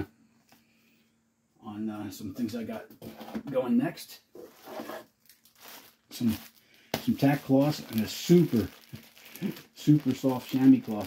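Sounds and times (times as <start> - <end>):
plastic packaging and cardboard rustling: 4.4 - 11.0.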